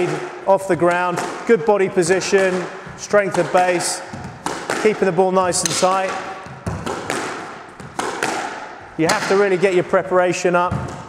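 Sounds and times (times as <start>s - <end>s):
squash ball knocks: 0.0s - 9.9s, 10.7s - 11.0s.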